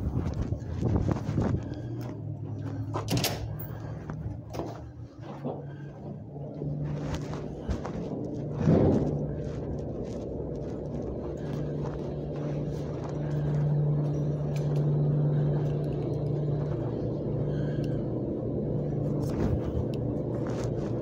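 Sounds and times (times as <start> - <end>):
tumble dryers humming and rumbling: 0.0 - 21.0.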